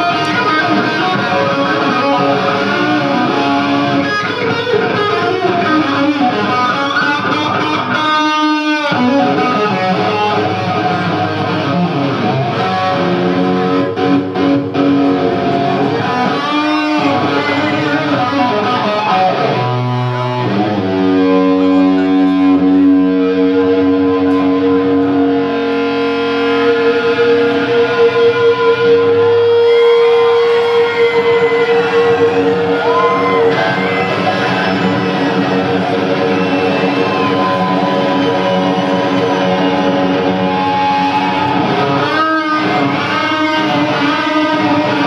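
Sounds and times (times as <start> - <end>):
electric guitar solo: 0.0 - 45.0.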